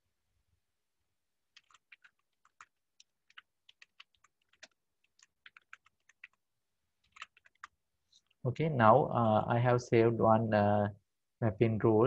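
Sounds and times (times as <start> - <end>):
typing on computer keyboard: 1.5 - 6.4, 7.0 - 7.8.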